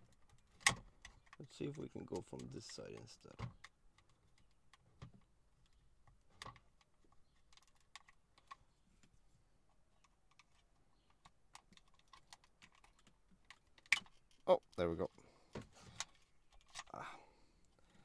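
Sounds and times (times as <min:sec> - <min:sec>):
small plastic clicks: 0:00.0 - 0:09.2, 0:09.9 - 0:14.8.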